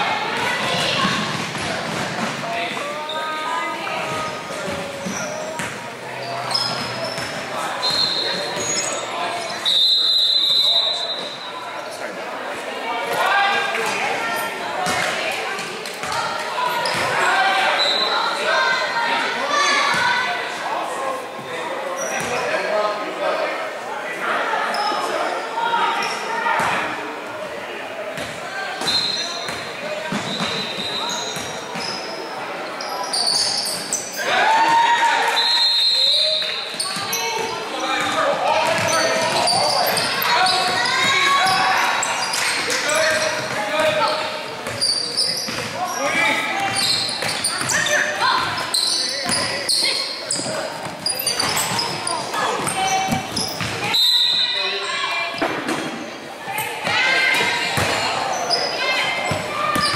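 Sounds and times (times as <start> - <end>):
people shouting in echoing gym: 0.0 - 11.7, 12.7 - 59.9.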